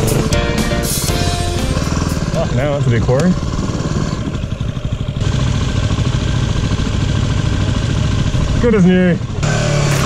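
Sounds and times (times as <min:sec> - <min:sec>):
dirt bike engine idling: 0:00.0 - 0:10.0.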